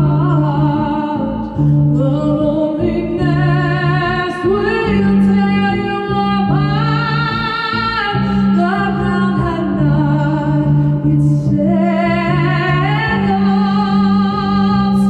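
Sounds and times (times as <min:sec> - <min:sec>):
bowed electric upright bass: 0:00.0 - 0:15.0
woman singing sliding notes: 0:00.0 - 0:15.0.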